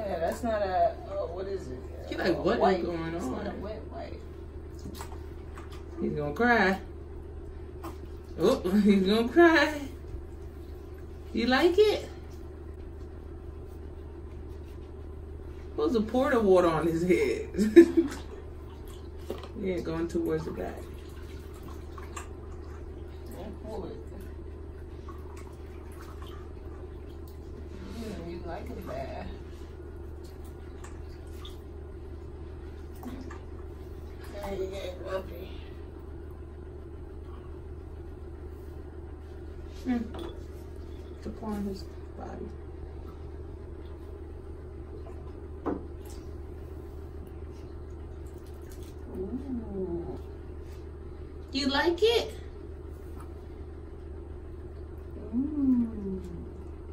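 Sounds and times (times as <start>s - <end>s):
steady low hum: 0.0s - 56.9s
small water splashes: 17.8s - 27.7s, 30.1s - 31.8s, 47.5s - 49.2s
water dripping and trickling: 18.6s - 27.6s, 47.2s - 49.1s.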